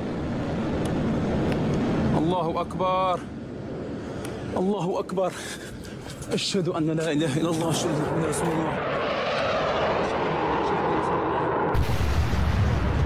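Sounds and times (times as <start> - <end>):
deep rumble of large explosion: 11.4 - 13.0.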